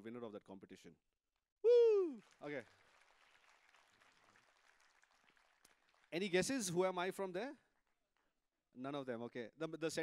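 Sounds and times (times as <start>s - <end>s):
faint audience applause: 2.0s - 6.9s.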